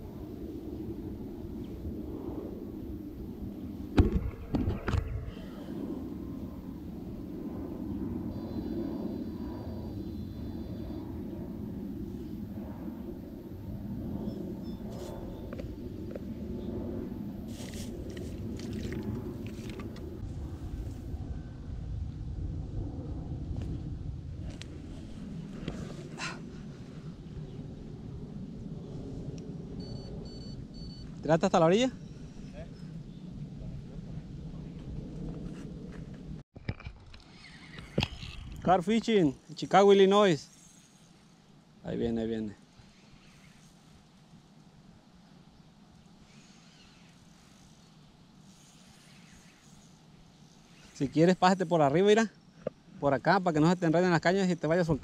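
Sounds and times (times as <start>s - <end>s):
low outdoor rumble: 0.0s - 36.4s.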